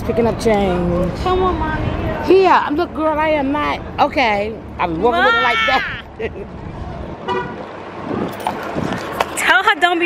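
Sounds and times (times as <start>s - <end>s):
road traffic: 0.0s - 10.0s.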